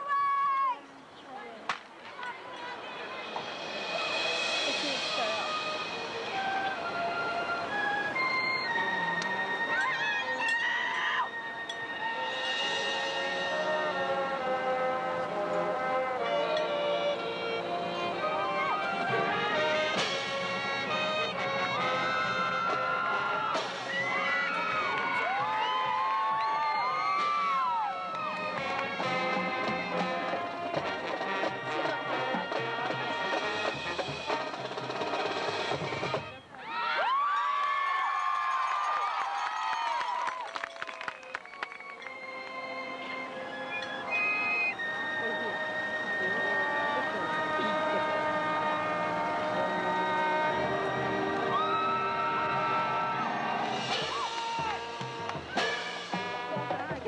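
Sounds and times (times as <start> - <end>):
drums: 1.7 - 40.1, 43.6 - 57.0
marching band playing: 2.6 - 10.6, 11.3 - 36.4, 41.0 - 57.0
gliding brass notes: 11.3 - 25.0, 28.0 - 35.6, 42.1 - 57.0
brass chords: 11.9 - 23.9, 28.1 - 36.2, 42.4 - 57.0.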